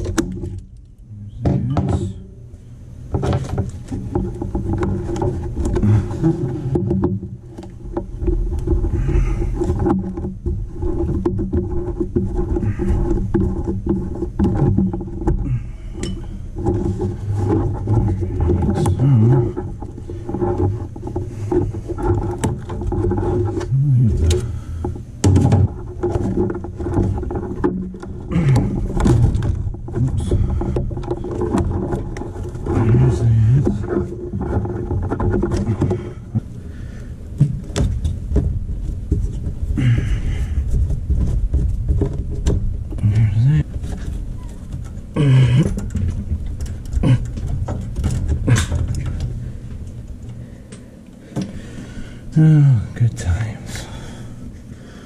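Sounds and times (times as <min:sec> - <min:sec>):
clicks and rustles of handling: 0:00.0 - 0:54.7
low mechanical hum: 0:00.0 - 0:55.0.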